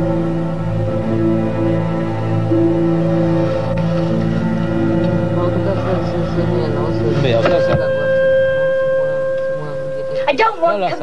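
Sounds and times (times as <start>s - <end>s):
orchestral music sustained chord: 0.0s - 11.0s.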